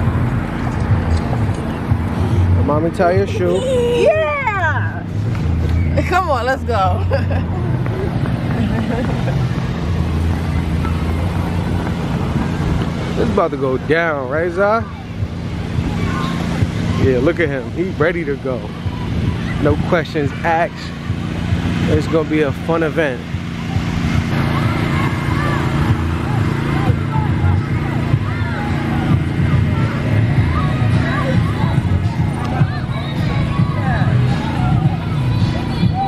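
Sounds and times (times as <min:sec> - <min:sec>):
faint distant voices: 0:00.0 - 0:36.0
road traffic rumble: 0:00.0 - 0:36.0
wind buffeting microphone: 0:05.0 - 0:36.0.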